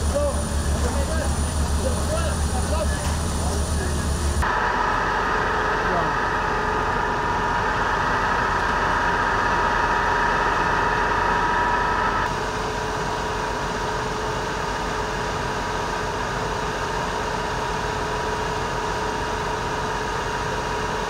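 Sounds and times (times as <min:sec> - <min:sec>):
fire engines running: 0:00.0 - 0:21.0
high mechanical whine: 0:00.0 - 0:21.0.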